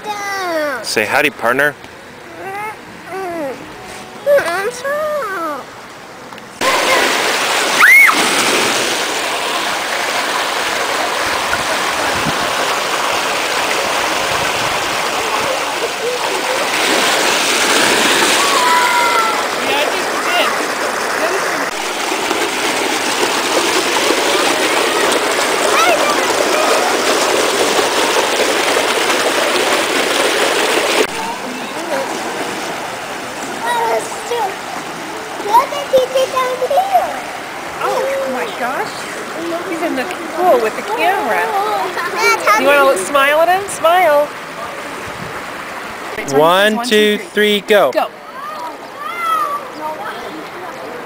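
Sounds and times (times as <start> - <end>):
pool water splashing: 0.0 - 51.0
running water rushing: 0.0 - 51.0.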